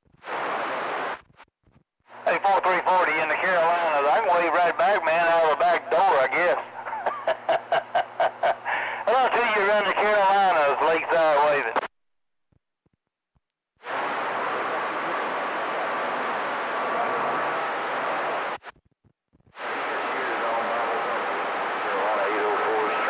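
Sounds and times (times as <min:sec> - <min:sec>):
radio static hiss: 0:00.0 - 0:12.0, 0:13.8 - 0:23.0
voice over radio: 0:02.2 - 0:06.8, 0:09.0 - 0:11.9, 0:20.0 - 0:23.0.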